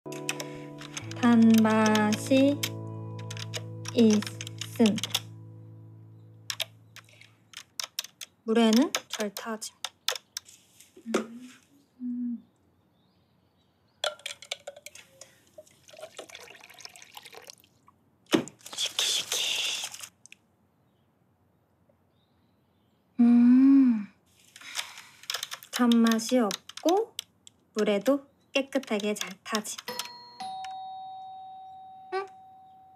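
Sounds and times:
keyboard typing clicks: 0:00.1 - 0:05.3, 0:06.5 - 0:10.5, 0:24.6 - 0:27.3
woman humming closed-mouth: 0:12.0 - 0:12.5, 0:23.2 - 0:24.1.

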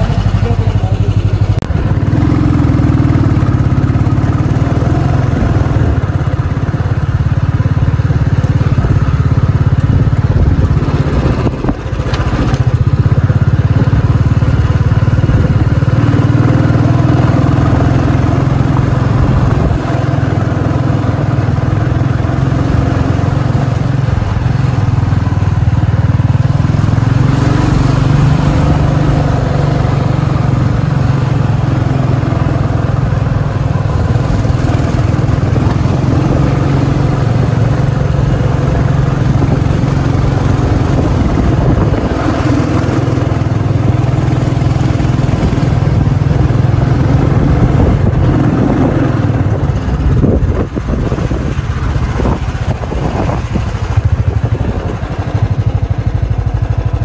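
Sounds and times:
motorbike engine running: 0:00.0 - 0:57.0.

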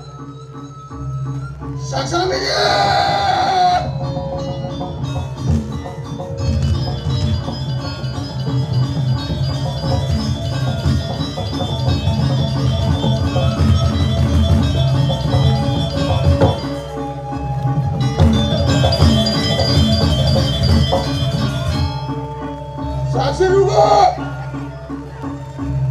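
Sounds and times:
loud voice crying out: 0:01.9 - 0:04.0, 0:23.2 - 0:24.5
metallophones ringing: 0:01.9 - 0:25.9
steady drum beats: 0:02.9 - 0:25.9.

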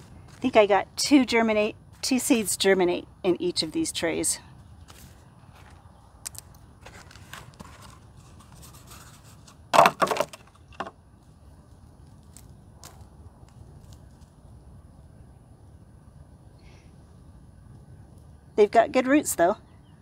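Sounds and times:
soil and roots crackling: 0:00.0 - 0:14.7
rustling and scraping of plastic pot: 0:04.8 - 0:11.0.

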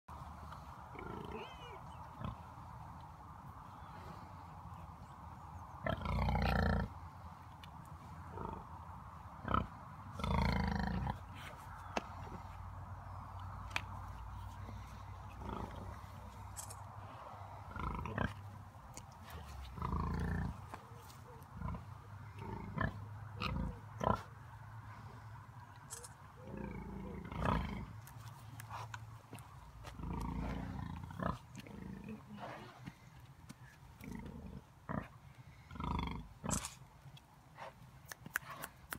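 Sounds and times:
pigs grunting: 0:00.9 - 0:02.5, 0:05.8 - 0:07.0, 0:09.4 - 0:11.3, 0:14.6 - 0:16.7, 0:17.6 - 0:18.5, 0:19.3 - 0:24.3, 0:25.9 - 0:28.0, 0:29.8 - 0:33.0, 0:34.0 - 0:36.8.

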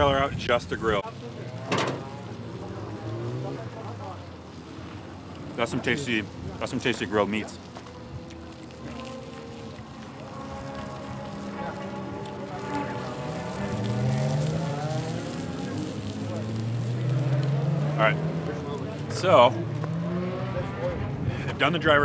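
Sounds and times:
car engine revving: 0:00.9 - 0:22.0.

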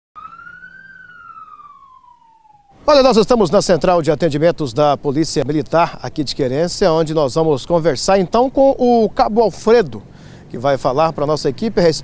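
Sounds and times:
siren wail: 0:00.2 - 0:03.7.

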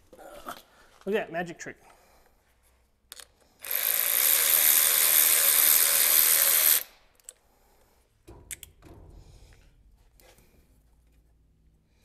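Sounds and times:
cordless electric ratchet running: 0:03.6 - 0:06.9.

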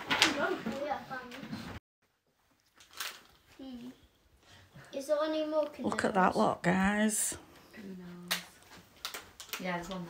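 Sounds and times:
woman's voice: 0:05.8 - 0:07.4.

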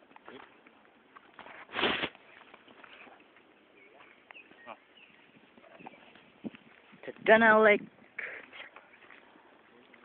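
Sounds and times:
rustling in undergrowth: 0:00.0 - 0:07.3.

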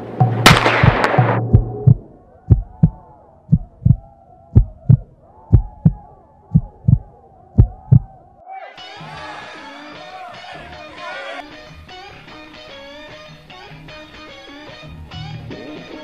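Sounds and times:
heartbeat thumps: 0:00.2 - 0:08.1.

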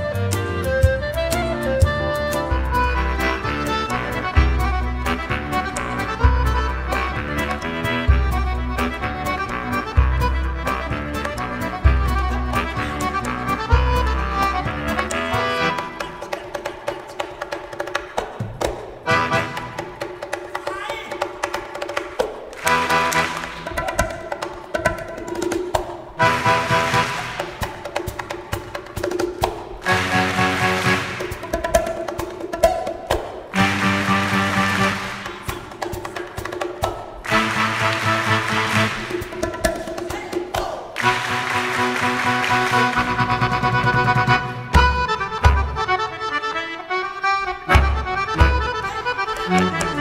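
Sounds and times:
folk band playing: 0:00.0 - 0:20.4, 0:21.2 - 0:40.0, 0:41.0 - 0:50.0
accordion: 0:00.0 - 0:39.7, 0:41.0 - 0:50.0.

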